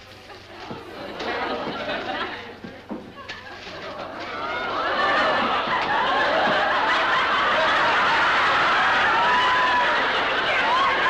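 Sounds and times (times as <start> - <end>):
audience laughing: 0.2 - 11.0.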